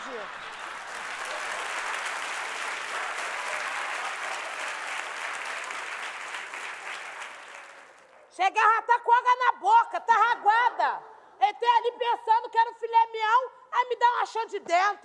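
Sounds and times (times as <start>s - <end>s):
studio audience applauding: 0.0s - 8.3s.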